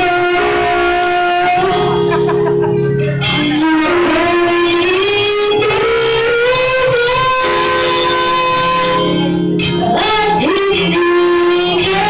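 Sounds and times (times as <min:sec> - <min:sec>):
girl singing into a microphone: 0:00.0 - 0:12.0
guitar backing track: 0:00.0 - 0:12.0.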